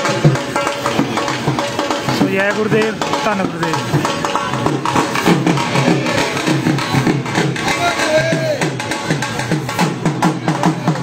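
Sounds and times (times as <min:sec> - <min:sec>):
dhol drum beating: 0:00.0 - 0:11.0.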